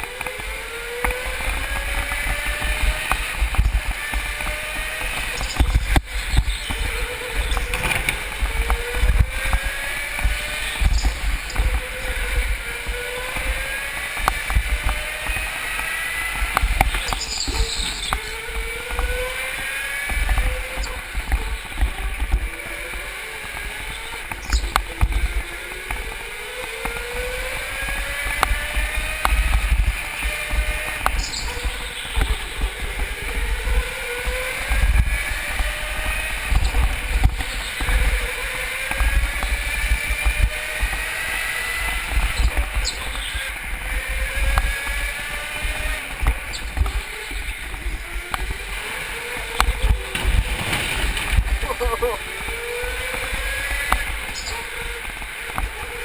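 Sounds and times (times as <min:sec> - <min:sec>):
go-kart engine whine: 0:00.0 - 0:56.0.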